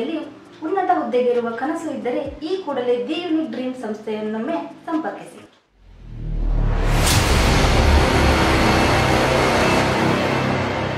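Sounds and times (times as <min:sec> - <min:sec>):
cinematic logo music: 0:05.8 - 0:10.9.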